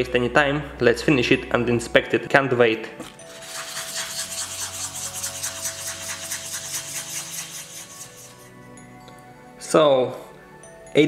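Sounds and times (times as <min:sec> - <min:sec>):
scratching on sandpaper: 0:03.2 - 0:08.5.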